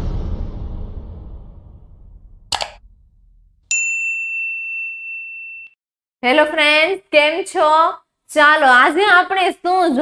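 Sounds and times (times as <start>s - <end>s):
low rumble: 0.0s - 3.7s
short click: 2.5s - 2.8s
bright bell ding: 3.7s - 5.8s.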